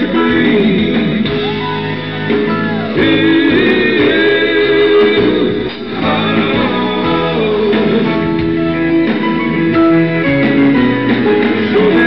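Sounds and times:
live band playing instrumental: 0:00.0 - 0:12.0.

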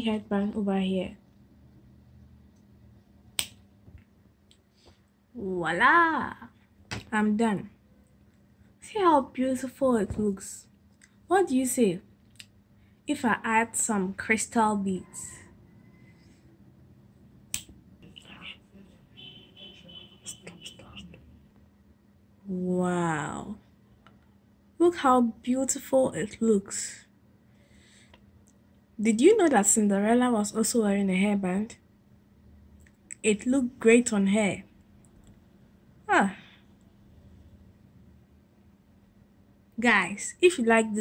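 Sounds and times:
finger snap: 0:03.4 - 0:03.6.

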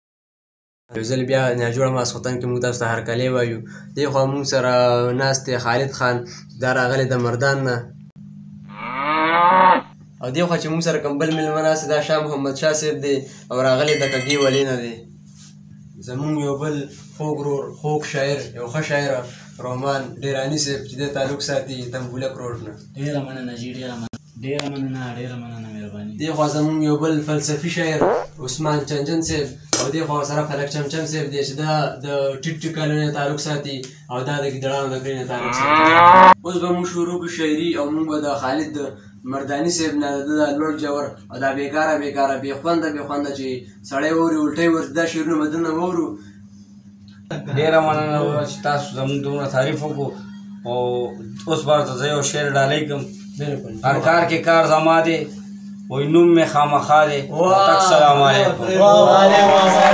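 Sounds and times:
cow mooing: 0:08.7 - 0:10.0, 0:28.0 - 0:28.4, 0:35.3 - 0:36.4.

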